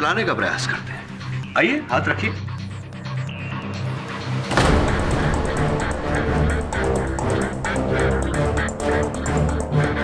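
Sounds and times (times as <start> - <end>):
dramatic orchestral score: 2.0 - 10.0
sudden loud hit: 4.5 - 7.3.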